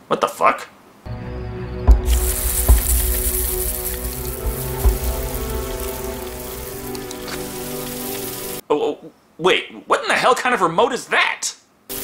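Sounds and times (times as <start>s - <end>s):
low thumps: 1.1s - 7.3s
film score music: 1.1s - 8.6s
sprinklers spraying hiss: 1.9s - 8.6s.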